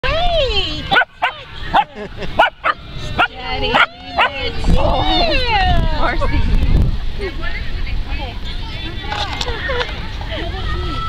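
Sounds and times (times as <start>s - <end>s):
puppy barking: 0.9s - 4.5s.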